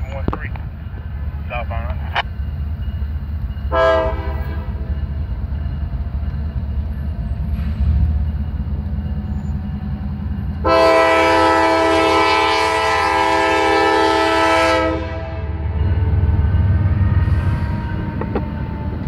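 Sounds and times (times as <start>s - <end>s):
diesel locomotive engine rumbling: 0.0s - 19.0s
train horn blast: 3.7s - 4.8s, 10.6s - 15.6s.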